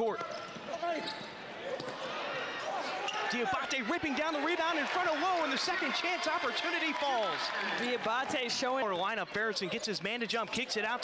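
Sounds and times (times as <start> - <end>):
basketball court noise: 0.0 - 11.0.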